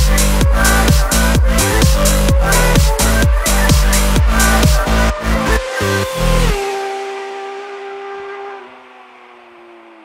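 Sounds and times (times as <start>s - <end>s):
synth chord sliding down: 0.0s - 10.0s.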